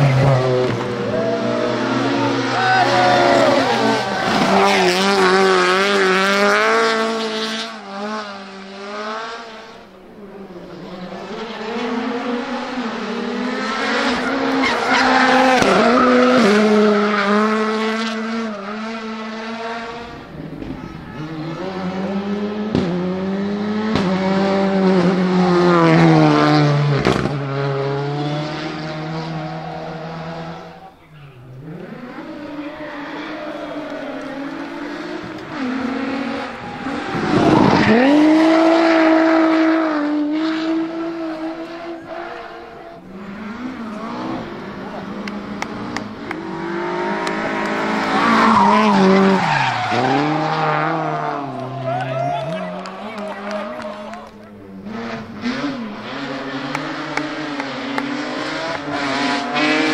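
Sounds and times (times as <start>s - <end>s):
rally car engines revving: 0.0s - 59.9s
tyre squeal: 14.1s - 16.6s.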